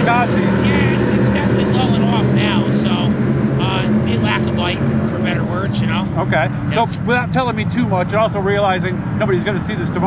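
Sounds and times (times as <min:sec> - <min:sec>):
race car engines droning: 0:00.0 - 0:10.0
voices: 0:00.0 - 0:10.0.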